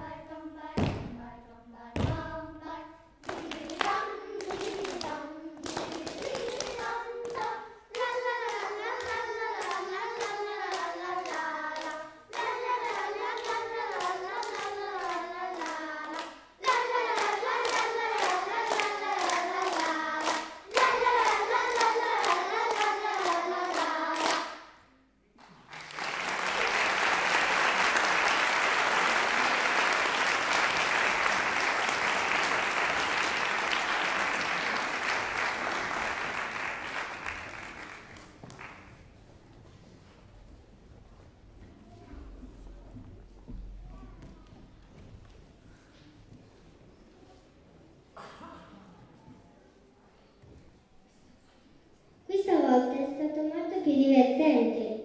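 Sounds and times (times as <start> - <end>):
children's choir singing: 0.0 - 24.8, 25.7 - 38.2
hands clapping in time: 25.4 - 39.0
audience applause: 25.7 - 39.0.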